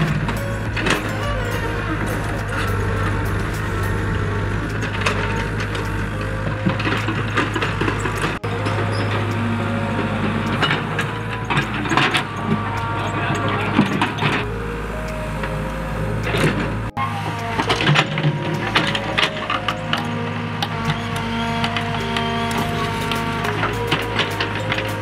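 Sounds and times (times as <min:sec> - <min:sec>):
background music: 0:00.0 - 0:25.0
excavator engine running: 0:00.0 - 0:25.0.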